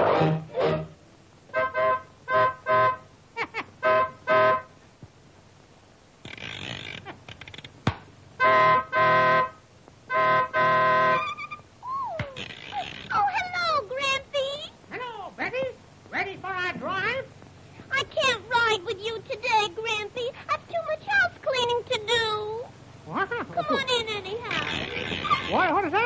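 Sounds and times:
squeeze-bulb horn honking: 1.5 - 3.1, 3.8 - 4.8, 8.4 - 11.6.

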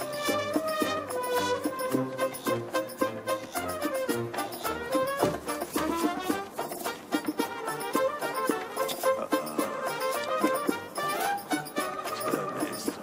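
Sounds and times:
film music with quick melody: 0.0 - 13.0.

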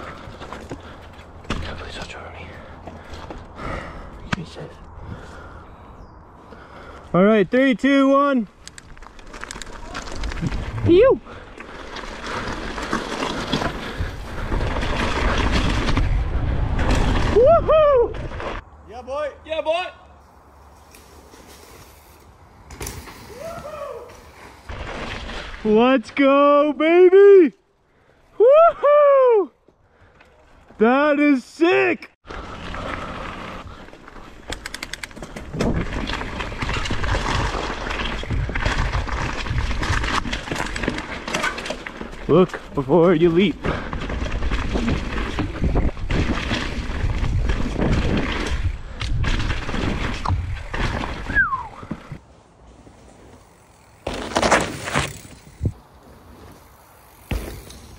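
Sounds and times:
bike tyres rattling over stones: 8.5 - 18.7, 20.9 - 26.1, 32.2 - 52.2, 52.8 - 57.9
wind rumble: 8.5 - 18.8, 43.8 - 52.2
person shouting woo: 17.4 - 18.1, 23.3 - 24.1, 28.4 - 29.5
bike rattling and knocking: 34.4 - 52.2.

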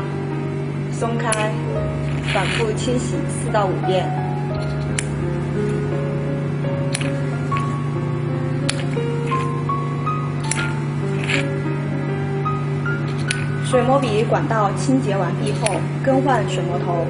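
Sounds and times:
low drone: 0.0 - 17.0
melody of held notes: 0.0 - 17.0.

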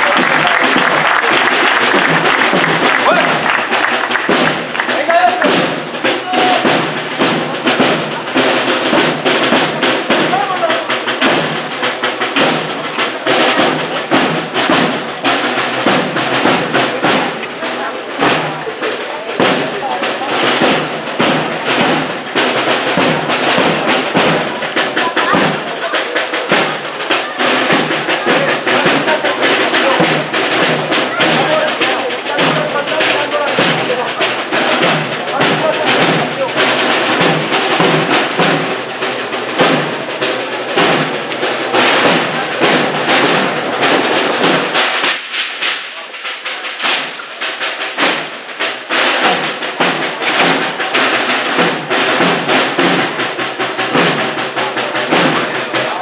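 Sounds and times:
processional band music with drums: 0.0 - 56.0.

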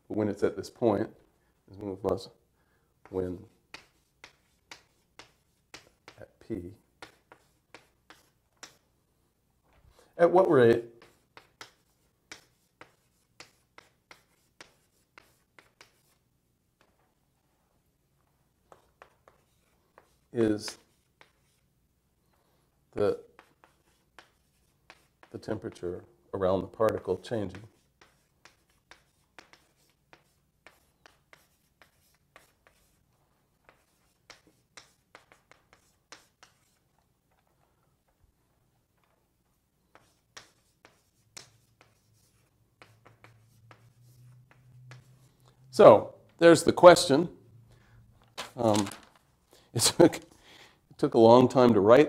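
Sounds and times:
pen scratching on paper: 7.0 - 8.8, 10.4 - 16.2, 18.7 - 21.6, 23.3 - 25.8, 27.0 - 37.0, 39.9 - 45.2
pen scratching while writing: 11.0 - 16.2, 27.8 - 33.0.

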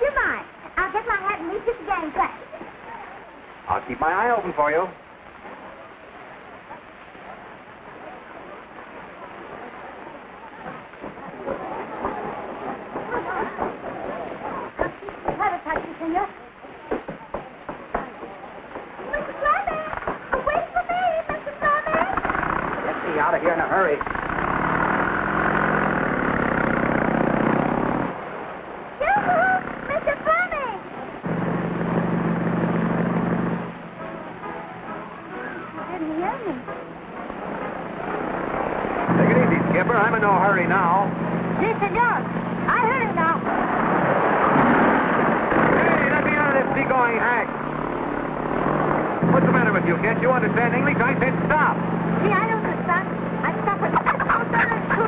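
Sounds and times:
voices: 0.0 - 55.0
motorcycle engine running: 21.7 - 28.3, 29.0 - 36.2, 37.3 - 55.0
wavering muffled music: 28.1 - 55.0.

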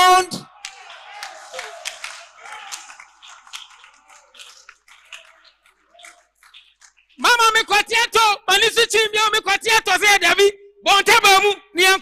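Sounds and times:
scattered hand claps: 0.6 - 7.2.

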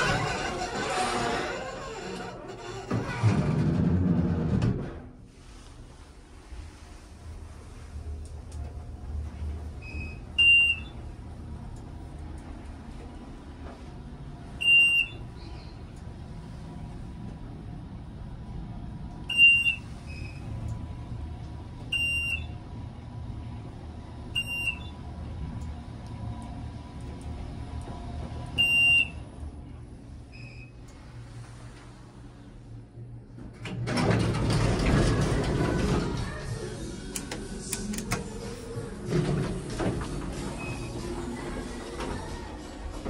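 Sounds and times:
elevator doors sliding open: 0.0 - 11.4, 12.4 - 43.0
elevator beep: 9.8 - 11.0, 14.6 - 15.3, 19.3 - 20.4, 21.9 - 22.6, 24.4 - 25.0, 28.6 - 29.2.

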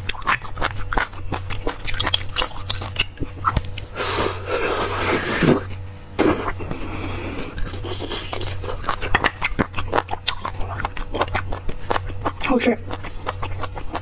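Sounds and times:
wet chewing: 0.0 - 14.0
slurping marrow from bone: 1.9 - 11.6.

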